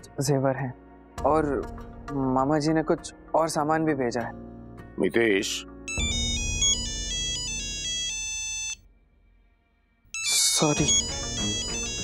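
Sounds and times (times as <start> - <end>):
phone ringtone melody: 5.9 - 8.8, 10.1 - 12.0.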